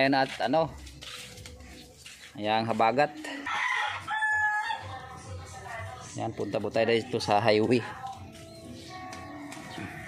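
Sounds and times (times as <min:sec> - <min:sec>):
rooster crowing: 0:03.3 - 0:04.9.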